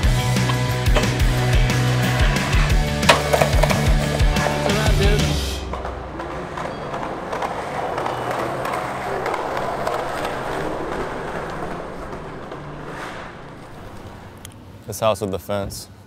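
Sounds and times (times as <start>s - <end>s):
skateboard wheels rolling on concrete: 0.0s - 15.3s.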